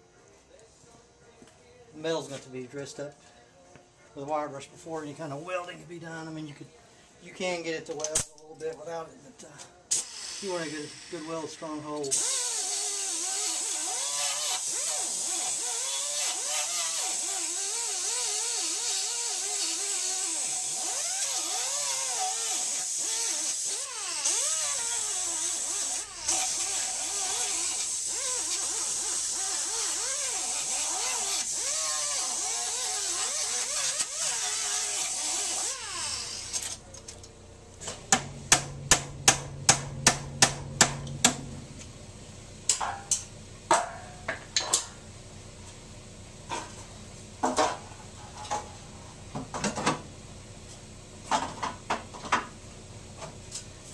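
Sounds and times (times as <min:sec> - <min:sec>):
air-powered wire brush on steel: 0:12.1 - 0:36.8.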